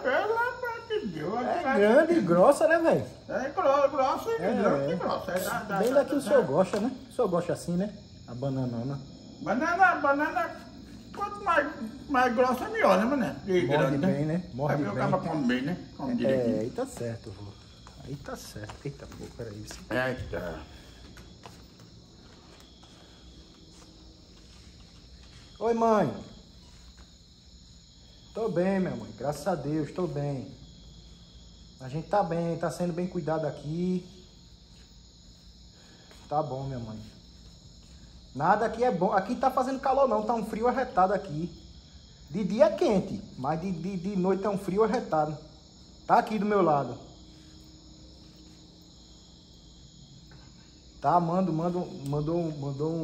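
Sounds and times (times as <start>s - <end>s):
crickets chirring: 0.0s - 53.0s.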